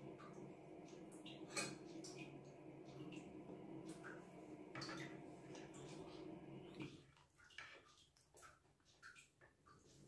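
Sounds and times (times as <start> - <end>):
soft low hum: 0.0 - 7.1.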